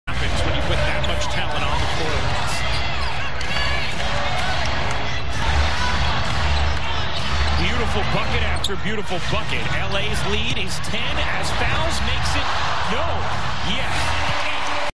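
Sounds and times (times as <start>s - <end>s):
arena music with heavy bass: 0.1s - 14.8s
arena crowd din: 0.1s - 14.9s.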